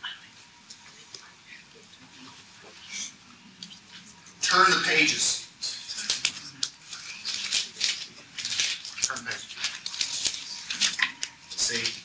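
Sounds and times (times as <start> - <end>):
pages being turned: 6.0 - 12.0.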